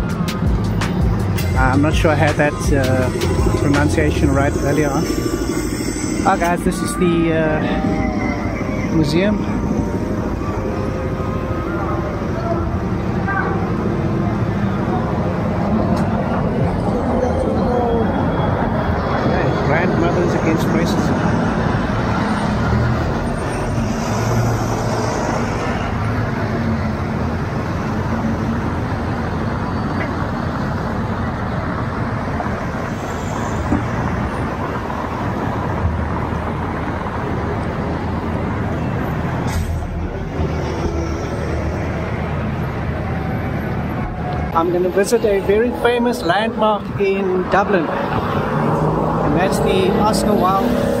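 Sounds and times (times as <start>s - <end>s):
bus engines running: 0.0s - 51.0s
passing vehicles: 0.0s - 51.0s.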